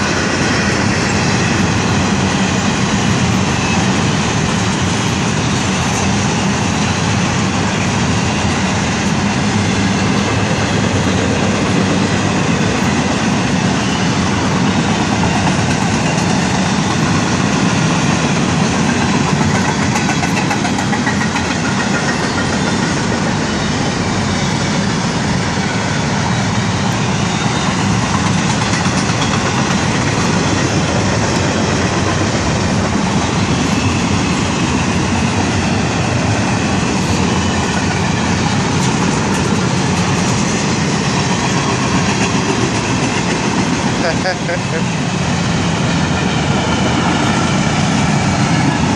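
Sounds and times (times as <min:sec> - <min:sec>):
freight train wheels clattering: 0:00.0 - 0:48.9.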